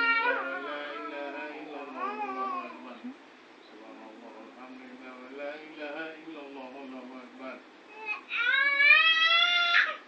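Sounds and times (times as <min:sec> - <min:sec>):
baby crying: 0:00.0 - 0:03.0, 0:07.9 - 0:10.0.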